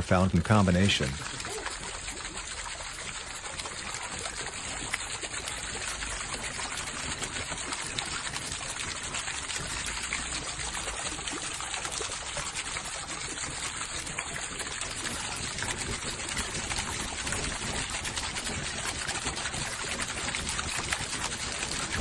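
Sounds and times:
fountain water splashing: 0:00.0 - 0:22.0.

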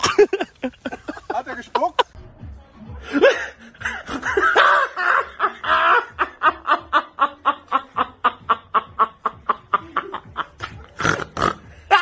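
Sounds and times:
woman laughing loudly: 0:00.0 - 0:01.3, 0:03.2 - 0:10.9.

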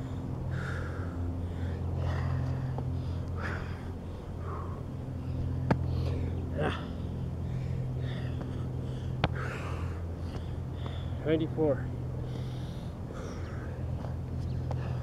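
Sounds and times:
man breathing hard and gasping: 0:00.0 - 0:11.2, 0:12.0 - 0:15.0
steady low hum: 0:00.0 - 0:15.0.

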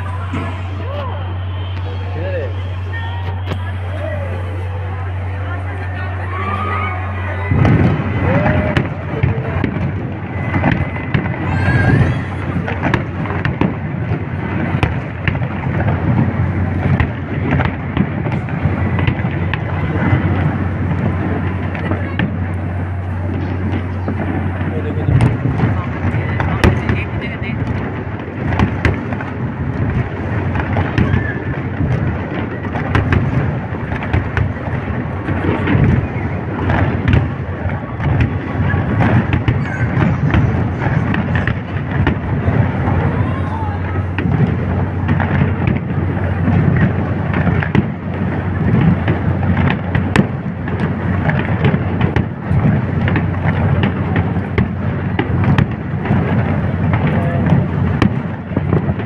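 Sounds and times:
distant fireworks booms: 0:00.0 - 0:59.0
fireworks bangs and crackles: 0:00.0 - 0:59.0.

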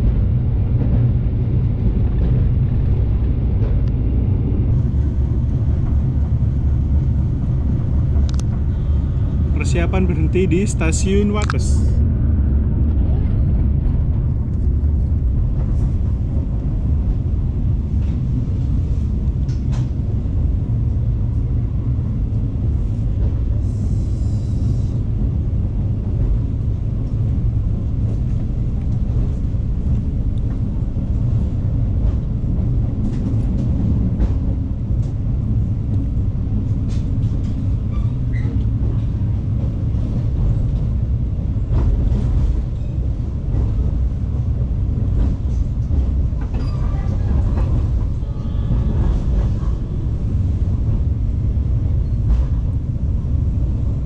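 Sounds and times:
train coach rumbling on track: 0:00.0 - 0:54.0.

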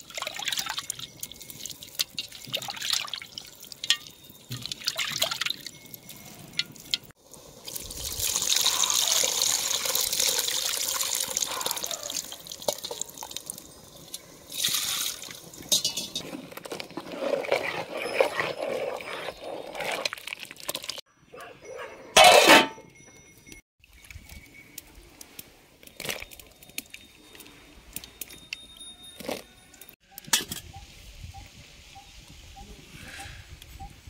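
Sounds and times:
water splashing into a pot: 0:00.0 - 0:05.7, 0:06.6 - 0:16.1.

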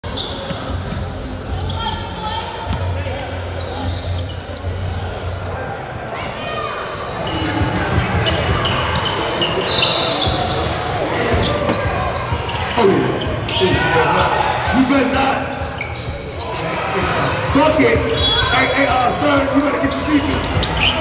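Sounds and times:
sneaker squeaks: 0:00.0 - 0:13.9, 0:15.4 - 0:21.0.

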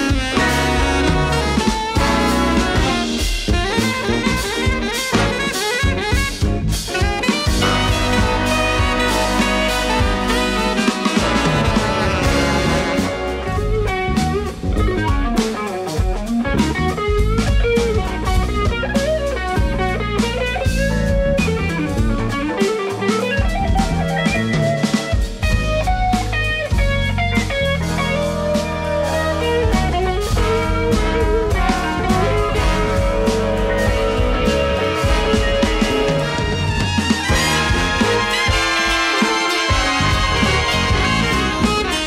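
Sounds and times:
drum kit: 0:00.0 - 0:42.0
electric bass: 0:00.0 - 0:42.0
electric guitar solo: 0:00.0 - 0:42.0.

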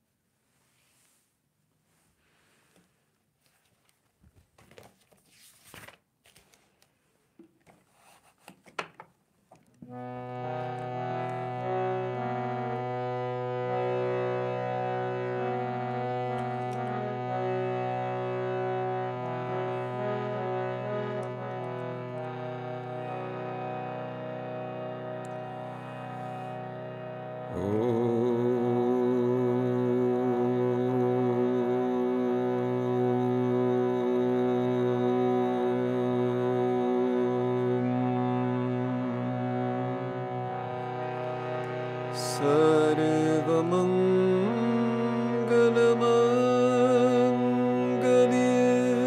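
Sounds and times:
harmonium chords over drone: 0:09.8 - 0:49.0.

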